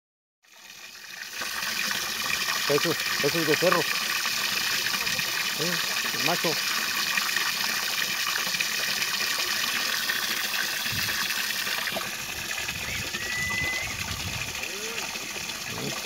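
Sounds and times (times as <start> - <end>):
short high whistled note: 12.8 - 14.0.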